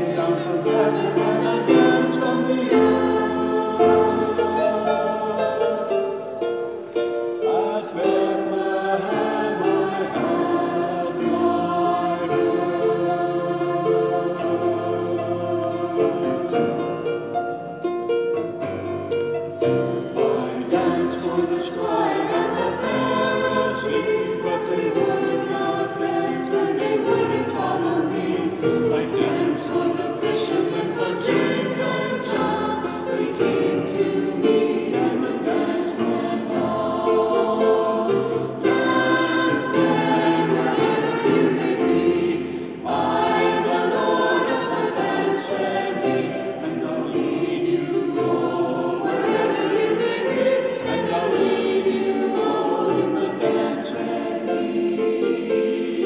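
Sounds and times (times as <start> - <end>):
mixed choir singing: 0.0 - 56.0.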